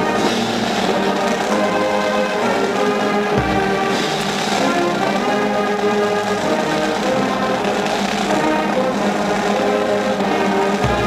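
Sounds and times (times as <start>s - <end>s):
marching band brass chords: 0.0s - 11.0s
low drum stroke: 3.3s - 5.3s, 10.8s - 11.0s.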